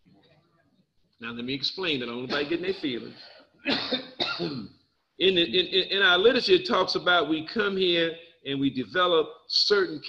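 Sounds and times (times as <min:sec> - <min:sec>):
man clearing his throat: 0:02.3 - 0:04.7.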